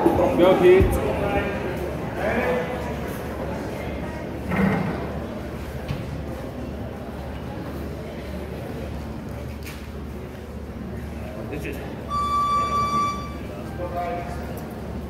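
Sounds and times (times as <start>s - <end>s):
spectators talking indistinctly: 0.0s - 15.0s.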